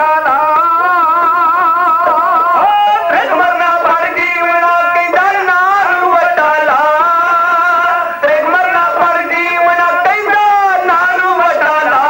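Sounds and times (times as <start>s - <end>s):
bowed sarangi: 0.0s - 12.0s
men singing: 0.0s - 12.0s.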